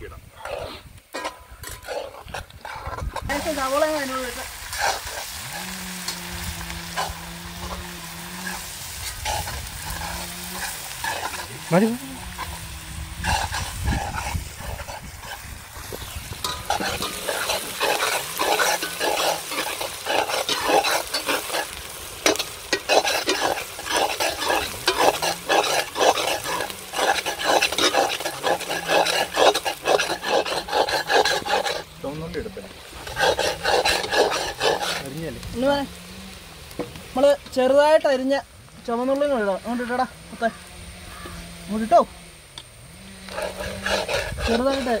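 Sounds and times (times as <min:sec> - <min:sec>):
onions sizzling in oil: 0:00.3 - 0:45.0
metal ladle scraping iron pan: 0:00.4 - 0:32.0, 0:32.9 - 0:35.2, 0:43.3 - 0:45.0.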